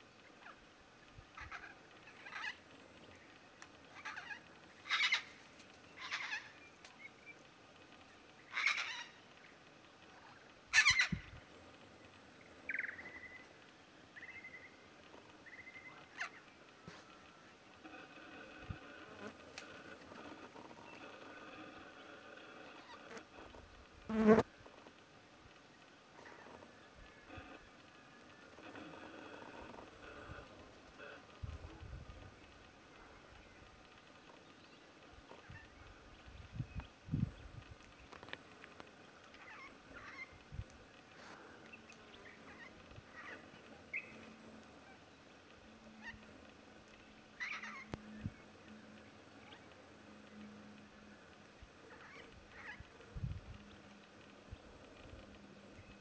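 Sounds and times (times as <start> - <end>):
cockatoos calling: 3.9 - 6.6, 45.9 - 46.4, 47.4 - 48.1
insects buzzing: 24.1 - 24.6.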